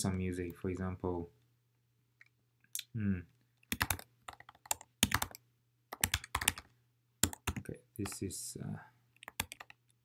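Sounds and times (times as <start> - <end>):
typing on computer keyboard: 3.7 - 8.2, 9.2 - 9.8.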